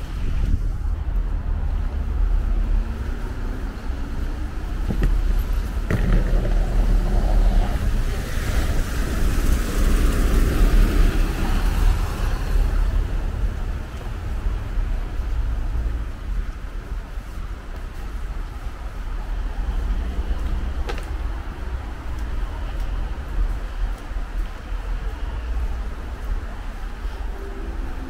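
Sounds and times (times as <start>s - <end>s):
traffic on wet road: 0.0s - 28.0s.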